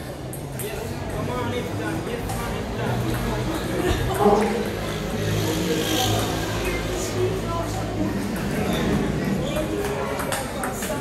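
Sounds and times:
murmur of voices: 0.0 - 11.0
table tennis ball clicking: 9.6 - 11.0.

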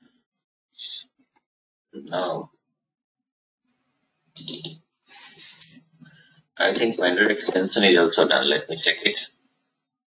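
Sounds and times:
computer keyboard typing: 4.4 - 4.8.

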